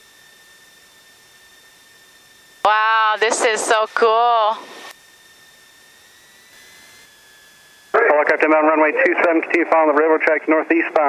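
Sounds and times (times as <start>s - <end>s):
high-pitched electronic whine: 0.0s - 11.0s.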